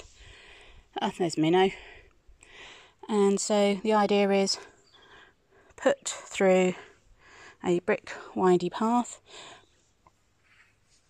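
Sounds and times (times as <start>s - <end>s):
soft breath: 0.0s - 0.9s
speech: 1.0s - 1.8s, 3.1s - 4.6s, 5.8s - 6.8s, 7.6s - 9.2s.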